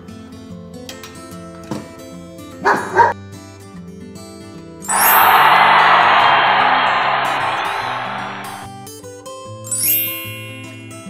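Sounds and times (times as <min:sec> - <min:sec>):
crowd applause: 0:04.9 - 0:08.7.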